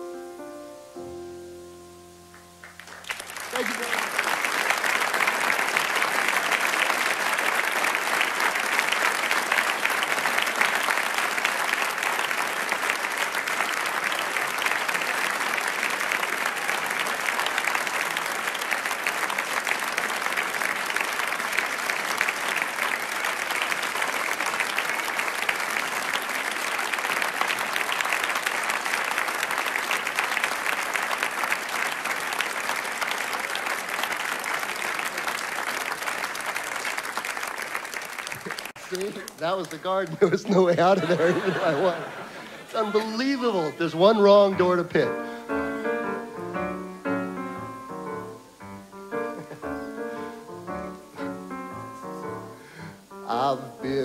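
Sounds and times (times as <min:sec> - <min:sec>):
piano note: 0:00.0 - 0:03.1
audience applauding: 0:02.3 - 0:54.0.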